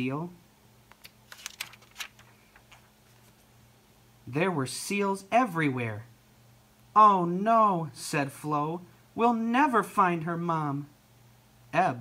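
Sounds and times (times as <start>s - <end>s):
book page turning: 0.9s - 3.5s.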